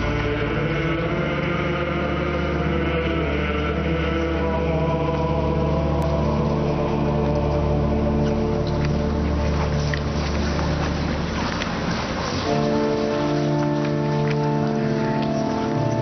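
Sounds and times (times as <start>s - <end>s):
pipe organ chords: 0.0s - 16.0s.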